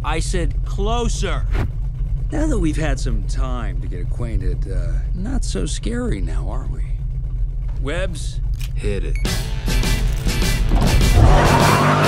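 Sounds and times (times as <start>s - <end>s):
car tires squealing: 10.8s - 12.0s.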